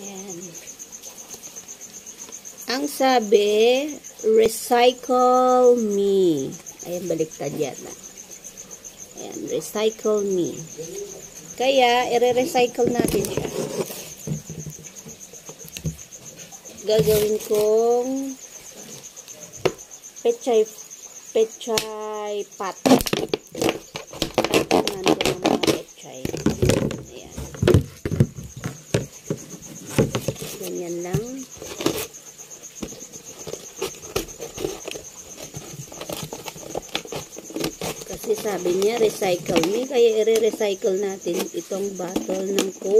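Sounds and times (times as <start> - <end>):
cricket chirping: 0.0 - 42.9
scissors cutting plastic bottle: 22.9 - 27.0, 33.5 - 39.8.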